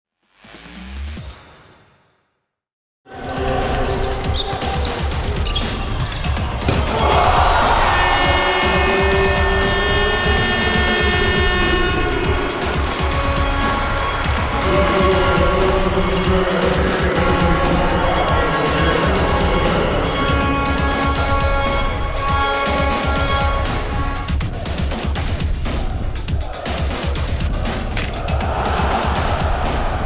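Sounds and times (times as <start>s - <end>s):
crowd cheering: 3.1s - 24.1s, 25.7s - 30.0s
background music: 3.1s - 30.0s
basketball bouncing: 4.3s - 7.4s.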